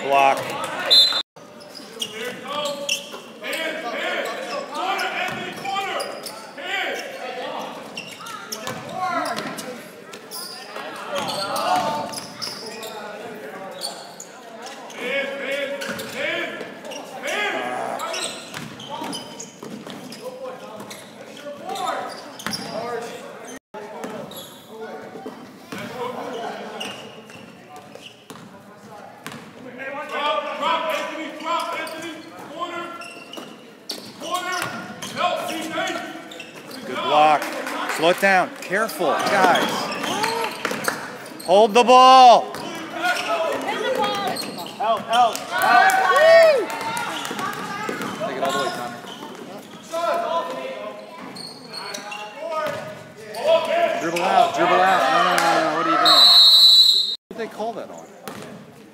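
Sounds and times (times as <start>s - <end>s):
indistinct talking and shouting: 0.0s - 27.9s, 28.5s - 58.0s.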